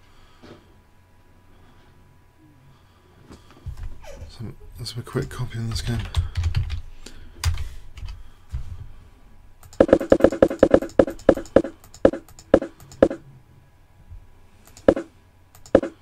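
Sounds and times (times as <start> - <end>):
typing on computer keyboard: 5.7 - 6.8, 9.6 - 13.2, 14.7 - 16.0.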